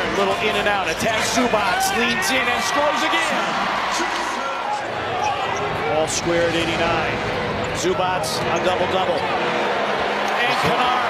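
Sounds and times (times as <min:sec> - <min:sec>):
arena crowd noise: 0:00.0 - 0:11.0
basketball game sounds: 0:00.0 - 0:11.0.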